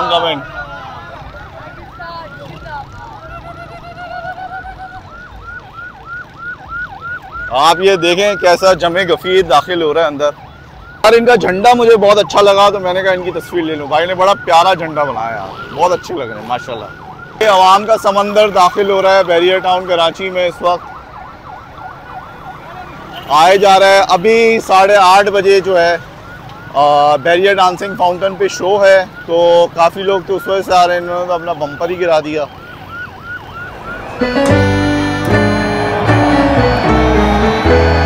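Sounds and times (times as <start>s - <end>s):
crowd noise: 0.0s - 5.1s, 33.5s - 38.0s
electronic siren yelping: 0.0s - 23.2s, 26.2s - 38.0s
second siren: 0.0s - 23.9s, 25.0s - 38.0s
traffic noise: 0.0s - 38.0s.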